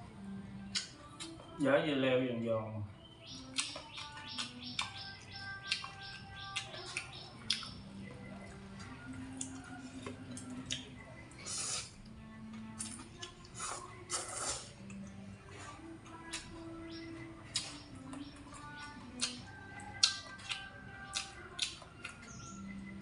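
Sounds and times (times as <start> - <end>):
soft background music: 0.0 - 23.0
noodles slurped and chewed: 12.8 - 15.0.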